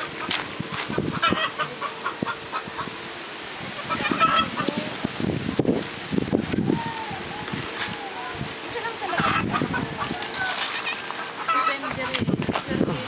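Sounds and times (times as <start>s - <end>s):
fowl clucking and honking: 0.3s - 5.0s, 9.0s - 12.3s.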